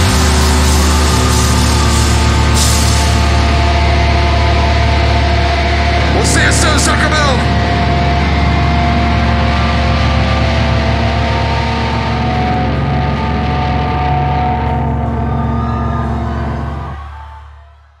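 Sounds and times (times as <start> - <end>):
droning metal guitar chord: 0.0 - 17.1
crowd noise: 0.0 - 18.0.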